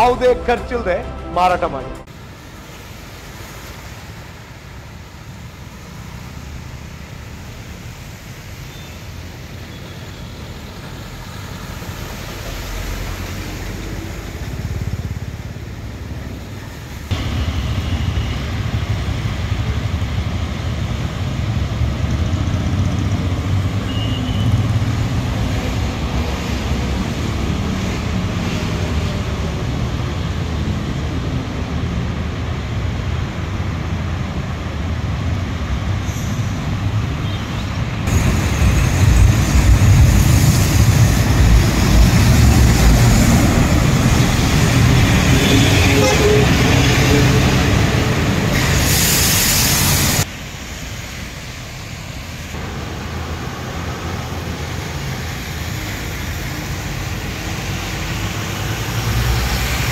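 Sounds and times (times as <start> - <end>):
vehicle engines rumbling: 0.0 - 59.9.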